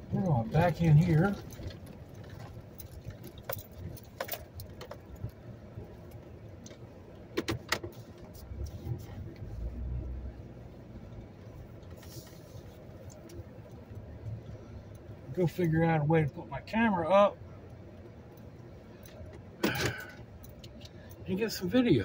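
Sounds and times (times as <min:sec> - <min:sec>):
road and engine rumble: 0:00.0 - 0:22.0.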